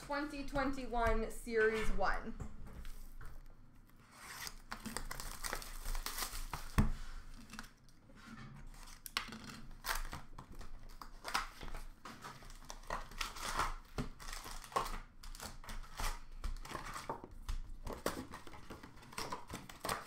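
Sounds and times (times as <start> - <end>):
card packs crinkling and tearing: 3.9 - 7.9, 8.7 - 20.0.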